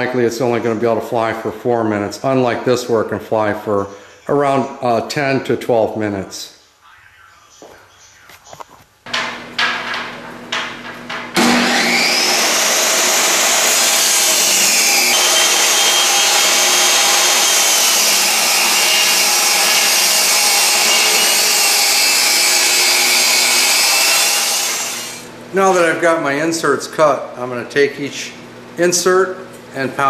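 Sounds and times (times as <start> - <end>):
table saw cutting wood: 9.1 - 25.3.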